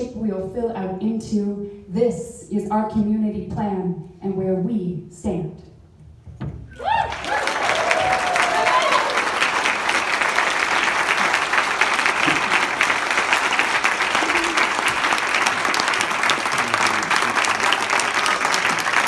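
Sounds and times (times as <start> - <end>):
audience applauding: 6.7 - 19.0.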